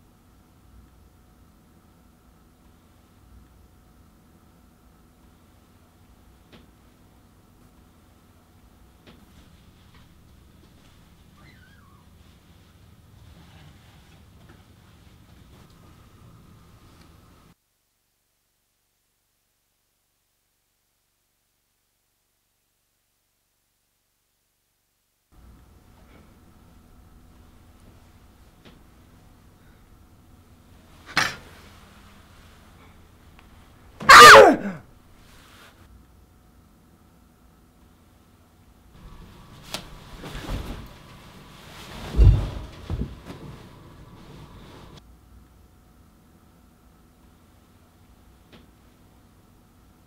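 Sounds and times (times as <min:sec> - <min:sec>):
low room hum: 0:00.0 - 0:50.0
woman crying out: 0:34.1 - 0:34.8.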